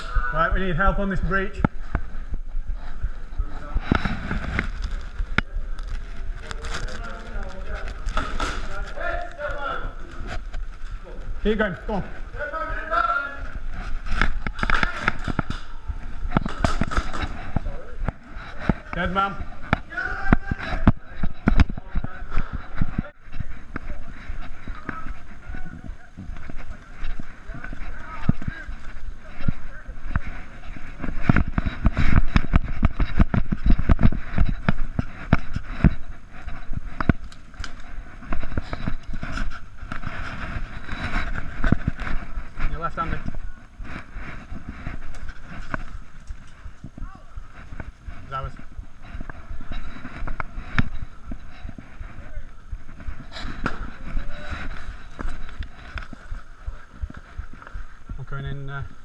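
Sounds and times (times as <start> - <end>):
clothing rubbing on microphone: 0.0 - 59.0
running footsteps on grass: 0.3 - 59.0
faint indistinct voices: 1.5 - 59.0.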